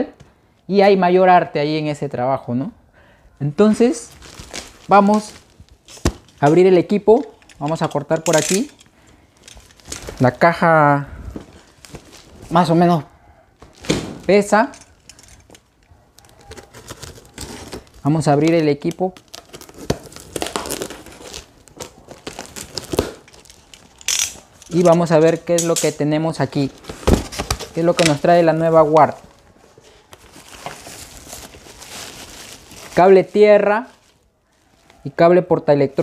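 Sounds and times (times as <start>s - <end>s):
packaging rustling and crinkling: 3.6s - 12.8s, 13.6s - 35.1s.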